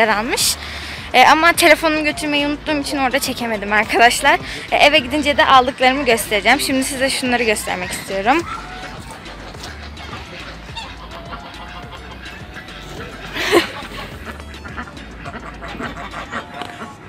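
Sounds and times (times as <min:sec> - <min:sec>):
faint background music: 0:00.0 - 0:17.0
waterfowl call: 0:06.4 - 0:17.0.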